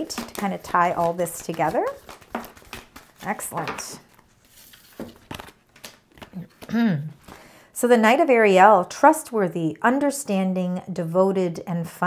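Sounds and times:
cards rustling: 0.0s - 7.5s.

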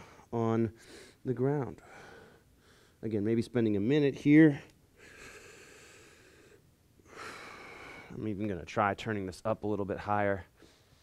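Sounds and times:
man breathing slowly: 0.0s - 3.0s, 4.9s - 8.2s, 10.6s - 11.0s.

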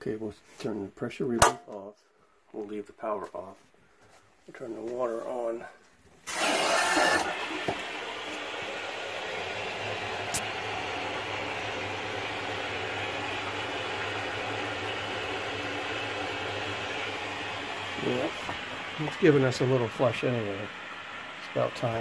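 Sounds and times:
valve hiss: 6.2s - 8.4s
water rushing through pipe: 6.2s - 22.0s.

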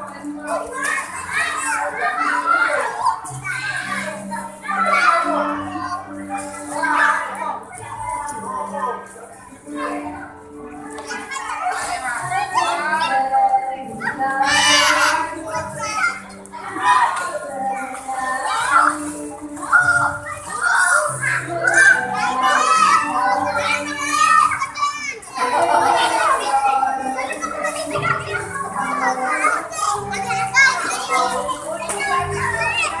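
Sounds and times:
children calling and chattering: 0.0s - 33.0s.

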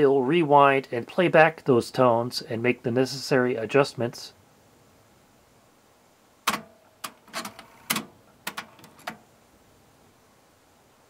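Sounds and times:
cassette deck clicking and clunking: 6.4s - 9.2s.

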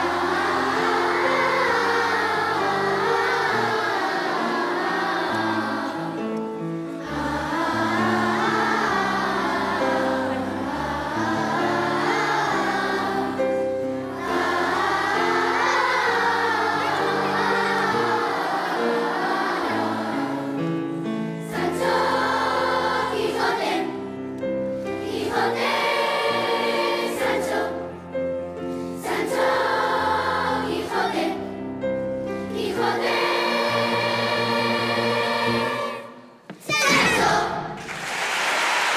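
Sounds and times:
children's choir singing: 0.0s - 38.9s.

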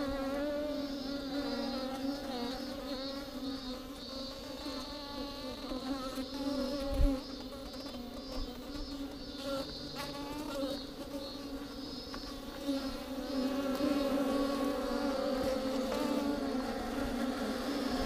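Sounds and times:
bees buzzing: 0.0s - 18.0s.

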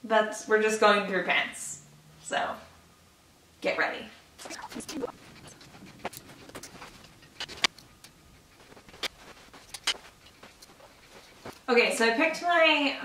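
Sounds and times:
clothes rustling: 4.4s - 12.3s.

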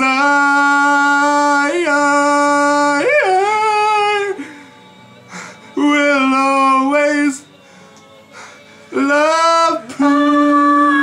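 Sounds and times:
man singing a long high note: 0.0s - 4.5s, 5.7s - 7.6s, 8.9s - 11.0s.

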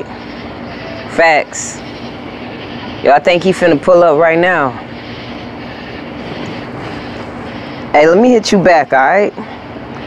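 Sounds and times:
outdoor hiss: 0.0s - 10.0s.

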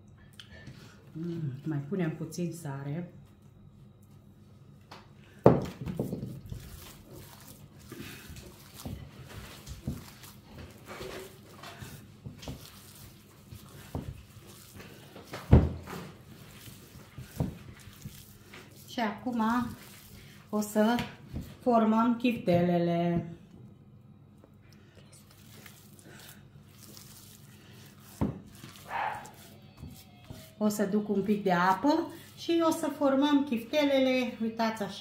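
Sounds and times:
hands squelching meat mixture: 6.0s - 21.7s, 24.6s - 33.1s.

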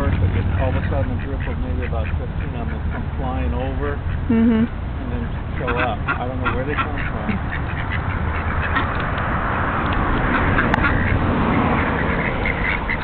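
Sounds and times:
ducks quacking: 0.0s - 4.4s, 5.0s - 9.4s, 10.0s - 13.0s.

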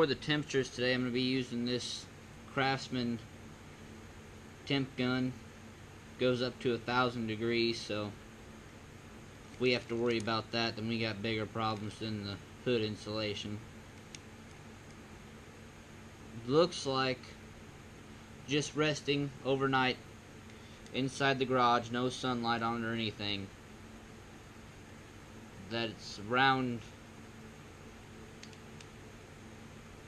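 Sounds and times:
faint low hum: 0.0s - 30.0s
small click: 13.9s - 15.0s, 28.4s - 29.0s.

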